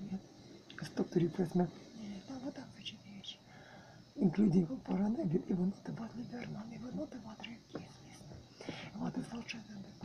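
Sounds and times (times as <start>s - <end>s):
woman whispering: 7.3s - 9.5s.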